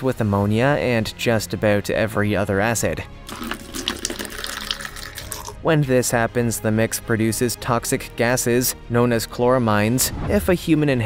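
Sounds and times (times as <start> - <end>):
background music: 0.0 - 11.0
liquid pouring into bucket: 3.2 - 5.6.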